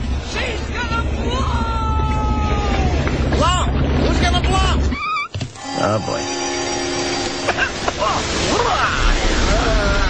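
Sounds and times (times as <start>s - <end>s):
held chord: 5.6s - 7.8s.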